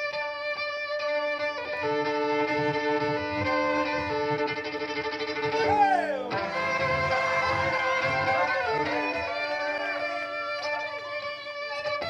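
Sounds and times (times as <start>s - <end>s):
fiddle being bowed: 0.0s - 12.0s.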